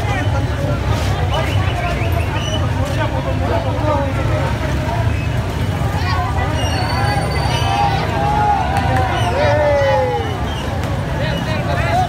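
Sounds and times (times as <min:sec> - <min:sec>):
many people talking: 0:00.0 - 0:12.0.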